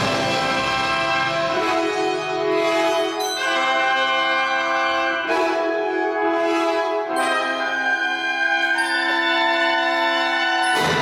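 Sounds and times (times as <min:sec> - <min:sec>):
symphony orchestra sustained chords: 0:00.0 - 0:11.0.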